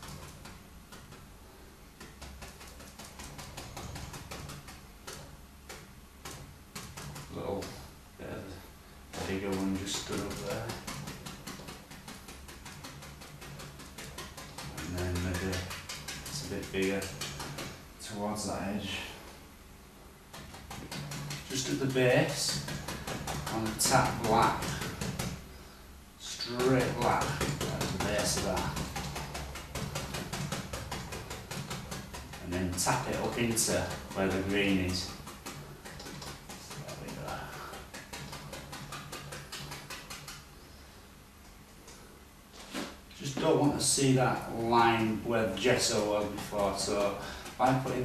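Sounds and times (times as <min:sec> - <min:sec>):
bristle brush tapping on canvas: 0:02.0 - 0:07.9, 0:09.1 - 0:17.9, 0:20.3 - 0:25.5, 0:26.4 - 0:40.6, 0:42.7 - 0:48.0.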